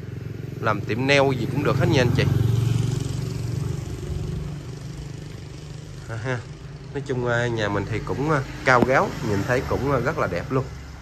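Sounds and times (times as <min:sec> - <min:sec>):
small motorcycle engine running: 0:00.0 - 0:11.0.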